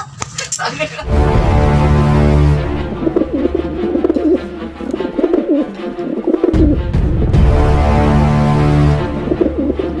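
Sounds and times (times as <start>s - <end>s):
low musical drone: 1.0s - 10.0s
pigeons cooing: 3.1s - 6.8s, 9.2s - 10.0s.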